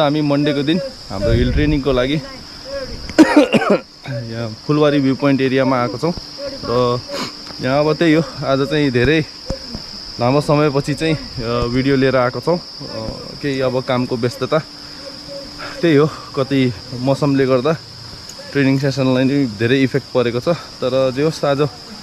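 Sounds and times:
man talking: 0.0s - 3.0s, 4.0s - 17.8s, 18.4s - 21.9s
high-pitched insect chorus: 0.0s - 22.0s.

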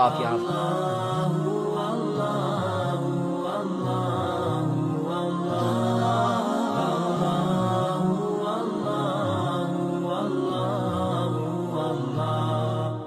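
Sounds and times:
background music: 0.0s - 13.0s
devotional vocal chant: 0.0s - 13.0s.

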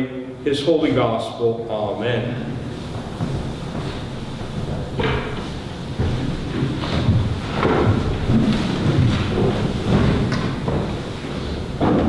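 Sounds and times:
low rumbling room noise: 0.0s - 12.0s.

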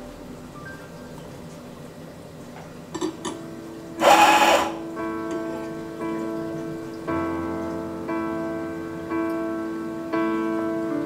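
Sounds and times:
coffee grinder motor running: 4.0s - 4.8s.

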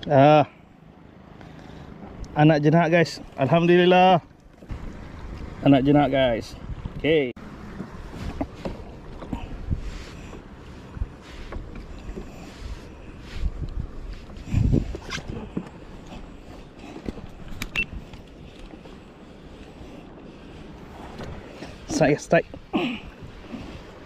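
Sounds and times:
water moving around kayak: 0.8s - 24.0s
wind buffeting microphone: 4.7s - 24.0s
knocks and clicks of gear: 6.8s - 9.4s, 14.9s - 18.8s.

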